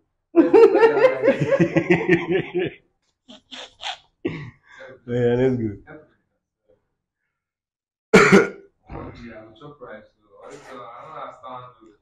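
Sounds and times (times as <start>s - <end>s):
person coughing: 8.2s - 8.6s.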